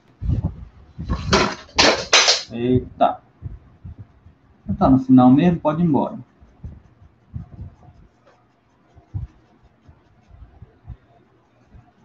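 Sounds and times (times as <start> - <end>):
pen scratching on paper: 6.2 - 10.8.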